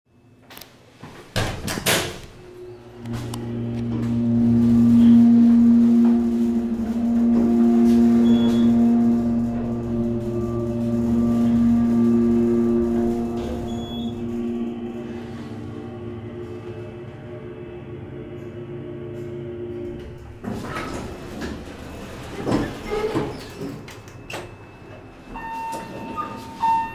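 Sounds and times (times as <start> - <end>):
elevator machinery humming: 1.7 - 26.9.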